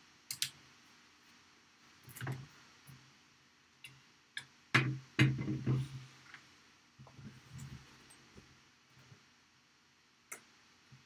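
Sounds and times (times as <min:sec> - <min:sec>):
lamp knocking and rattling: 0:04.8 - 0:05.8.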